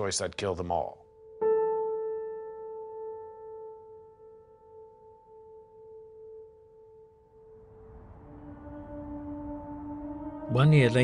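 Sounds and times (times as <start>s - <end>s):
piano music: 0.0s - 11.0s.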